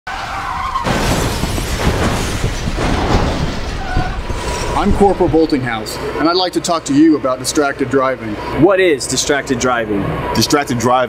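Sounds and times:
car crash: 0.1 - 7.0
car tyres screeching: 0.1 - 11.0.

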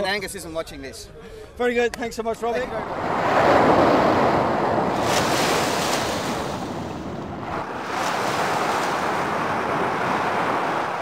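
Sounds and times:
small waves washing on sand: 2.8 - 11.0.

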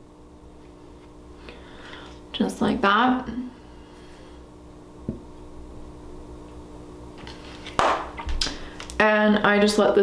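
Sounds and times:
sharp knock of item set down: 7.8 - 8.2.

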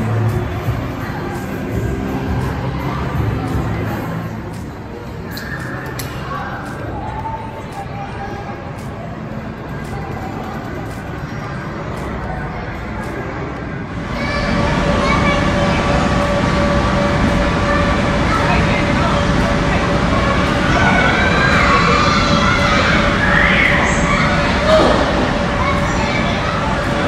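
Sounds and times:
din of busy play hall: 0.0 - 27.0
indistinct voices: 0.0 - 27.0
children shouting: 14.0 - 18.8, 20.4 - 27.0.

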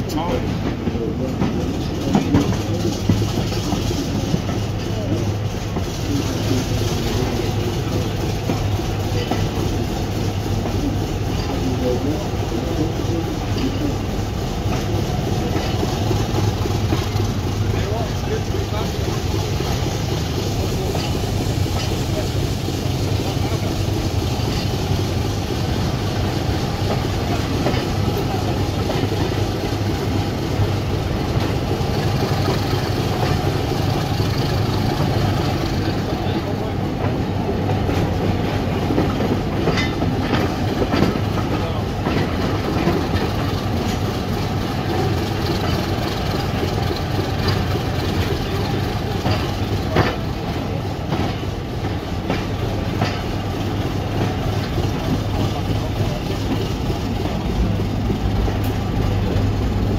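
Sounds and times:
train low drone: 0.0 - 59.9
wheels clicking over rail joints: 0.0 - 59.9.

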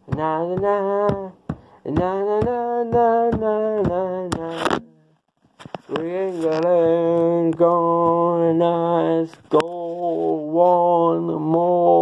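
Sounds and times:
man singing wordless tune: 0.0 - 5.2, 5.9 - 12.0.

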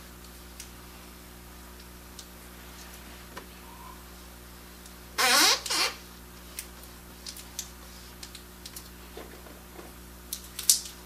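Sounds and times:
rubber squeak falling in pitch: 5.2 - 6.0.

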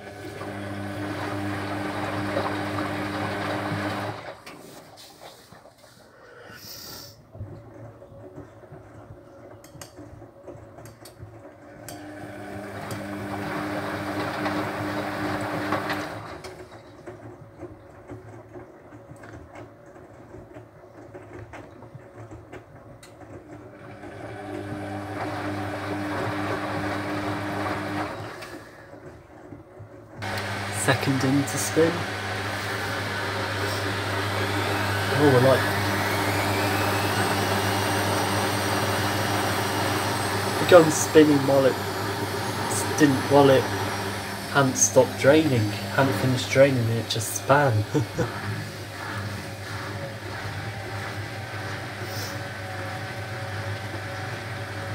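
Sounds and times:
washing machine motor humming: 0.0 - 6.0, 7.2 - 54.9.

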